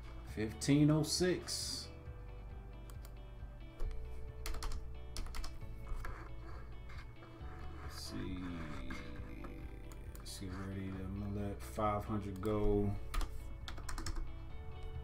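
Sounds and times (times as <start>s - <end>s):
quiet background music: 0.0s - 15.0s
computer keyboard keys clicking: 3.8s - 6.2s, 12.3s - 15.0s.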